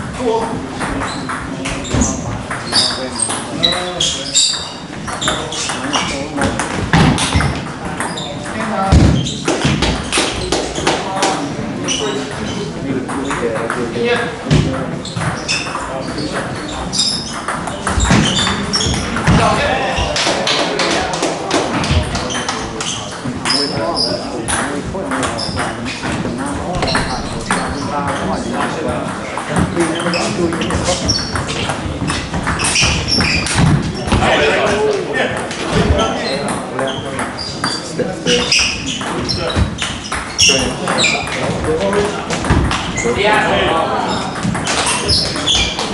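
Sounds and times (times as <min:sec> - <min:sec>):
indistinct chatter in large hall: 0:00.0 - 0:45.9.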